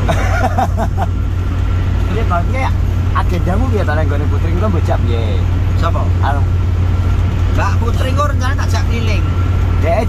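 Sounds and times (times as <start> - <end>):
man laughing: 0.0 - 1.2
road and engine rumble: 0.0 - 10.0.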